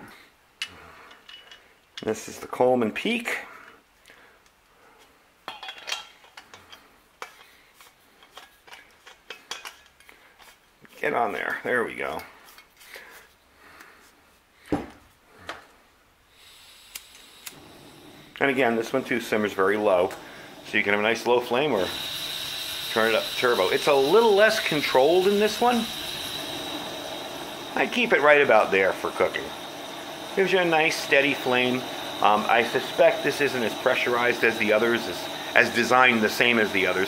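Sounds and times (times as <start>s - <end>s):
faint steady gas hiss: 0.0s - 37.0s.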